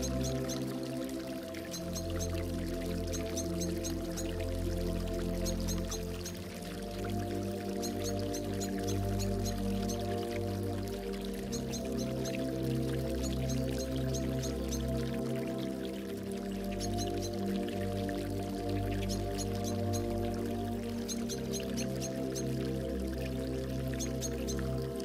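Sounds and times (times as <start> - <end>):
gurgling water: 0.0 - 25.0
slow ambient synth music: 0.0 - 25.0
small bird chirping: 11.5 - 12.4.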